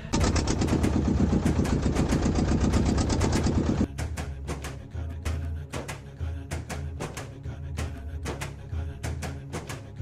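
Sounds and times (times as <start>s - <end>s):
boat engine knocking: 0.1s - 3.9s.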